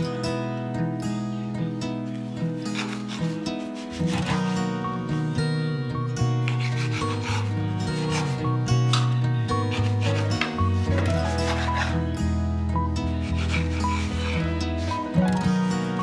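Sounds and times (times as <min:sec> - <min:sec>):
background music: 0:00.0 - 0:16.0
knife sawing through bread crust: 0:02.6 - 0:04.8, 0:06.4 - 0:12.2, 0:13.0 - 0:15.2.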